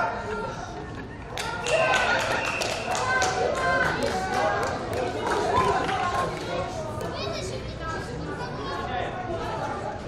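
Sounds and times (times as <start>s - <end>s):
people shouting and chattering: 0.0s - 10.0s.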